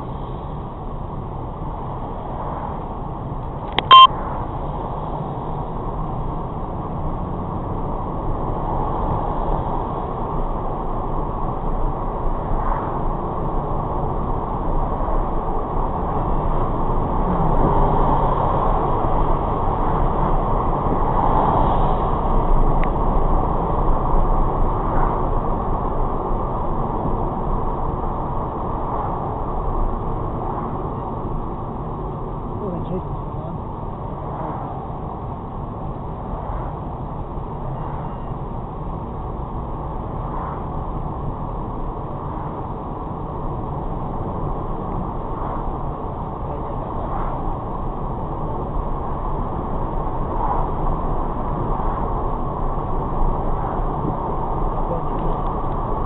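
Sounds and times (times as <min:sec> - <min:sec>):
car road and engine noise: 0:00.0 - 0:56.0
loud short beep: 0:03.8 - 0:04.1.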